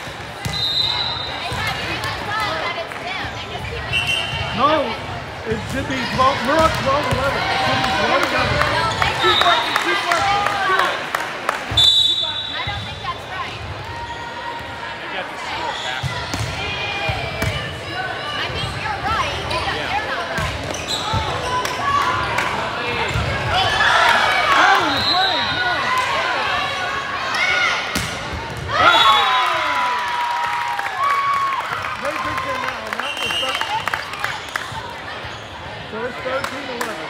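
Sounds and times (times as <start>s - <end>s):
whistle blast: 0.5s - 1.4s, 3.9s - 4.3s, 11.8s - 12.8s, 24.8s - 25.7s, 28.8s - 29.4s
shoes squeaking on court: 20.6s - 21.6s
shouts and cheers: 28.7s - 33.8s.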